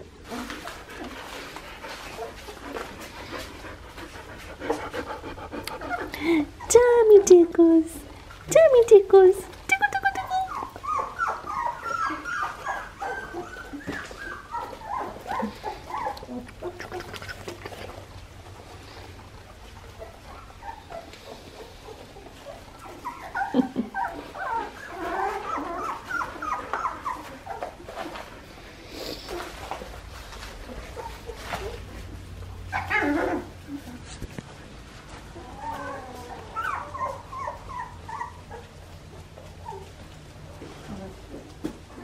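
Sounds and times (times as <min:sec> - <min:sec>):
puppies whining and squeaking: 0:00.0 - 0:08.5, 0:09.5 - 0:42.0
rustling of wood shavings: 0:00.1 - 0:04.9, 0:09.4 - 0:42.0.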